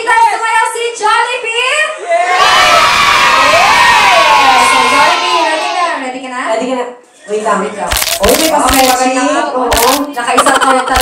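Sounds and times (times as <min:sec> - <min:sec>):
children cheering and shouting: 0:02.2 - 0:06.0.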